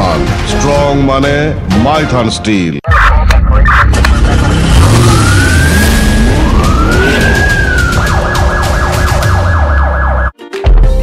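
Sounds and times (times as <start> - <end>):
police siren wailing and yelping: 4.9 - 10.3.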